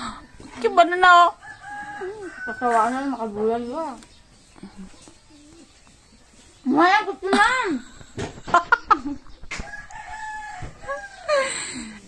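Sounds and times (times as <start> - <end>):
rooster crowing: 1.4 - 3.0, 9.5 - 11.8.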